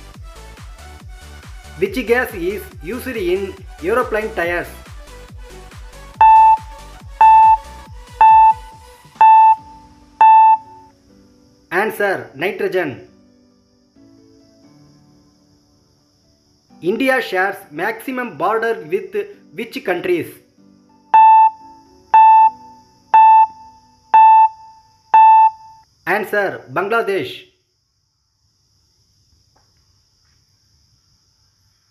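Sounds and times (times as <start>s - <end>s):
background music with steady beat: 0.0s - 11.0s
countdown timer beeps: 6.2s - 10.8s, 21.1s - 25.8s.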